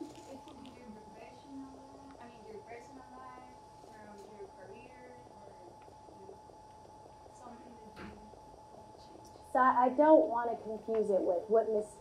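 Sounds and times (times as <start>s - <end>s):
steady thin hum: 0.0s - 12.0s.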